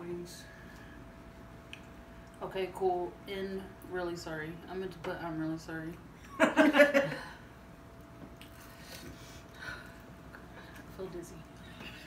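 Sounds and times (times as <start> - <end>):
woman laughing: 6.2 - 7.4.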